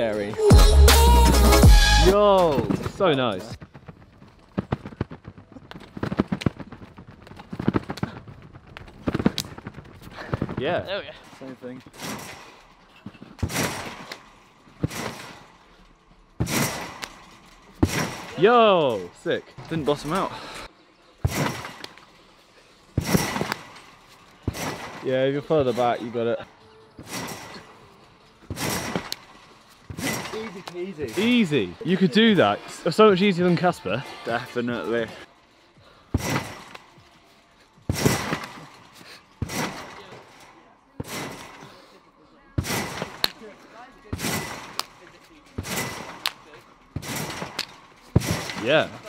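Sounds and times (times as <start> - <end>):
trampoline bouncing: 2.2 - 49.0.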